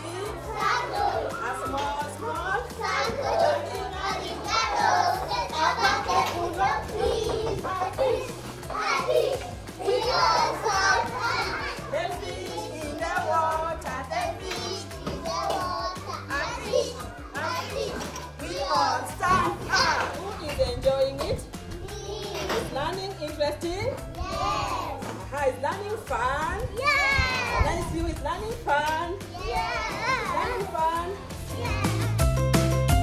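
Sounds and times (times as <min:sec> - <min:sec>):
young children calling and chattering: 0:00.0 - 0:32.5
background music with bass: 0:00.0 - 0:33.0.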